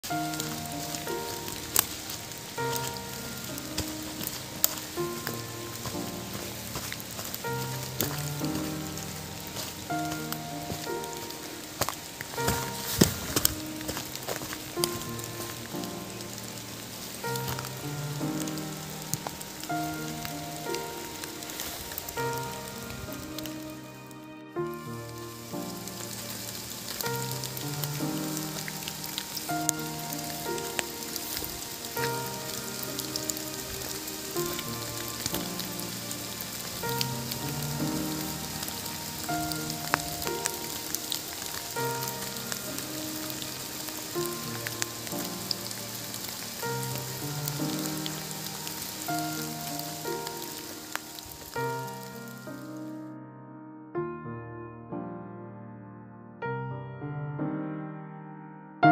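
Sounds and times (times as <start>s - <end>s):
rain hiss: 0.0s - 53.0s
music of slow held notes: 0.0s - 58.9s.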